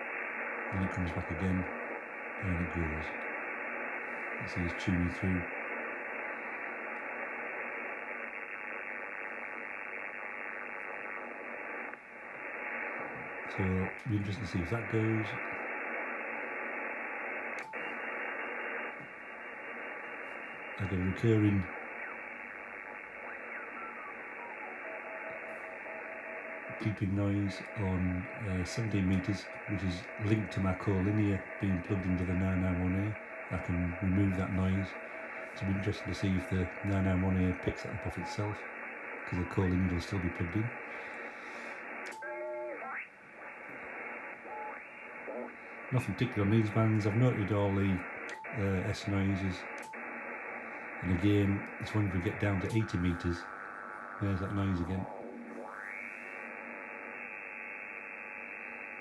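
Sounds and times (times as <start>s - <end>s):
pitch-sliding radio voices: 0.0s - 59.0s
radio band noise hiss: 0.0s - 59.0s.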